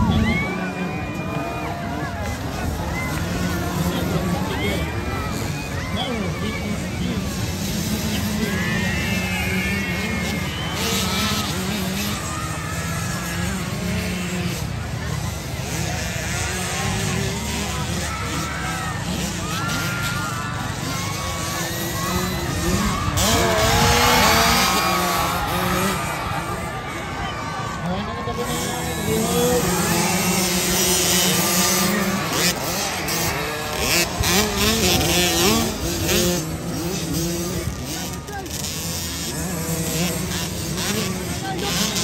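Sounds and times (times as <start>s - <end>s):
crowd talking and shouting: 0.0s - 42.0s
motocross bike engines droning: 0.0s - 42.0s.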